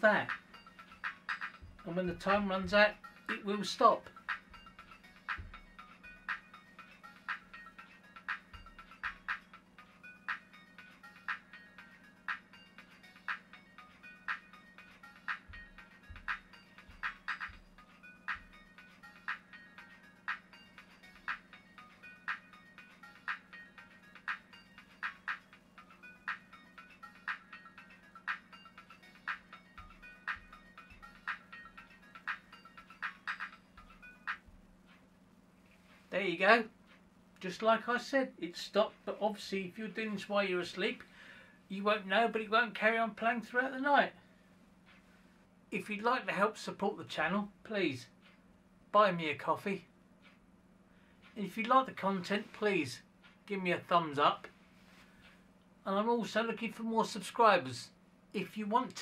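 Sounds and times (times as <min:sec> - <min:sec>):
music through small speaker: 0:00.0 - 0:35.1.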